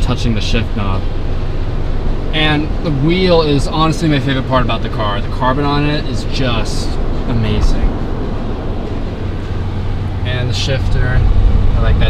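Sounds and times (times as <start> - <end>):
air-conditioning blower rushing: 0.0 - 12.0
idling engine hum: 0.0 - 12.0.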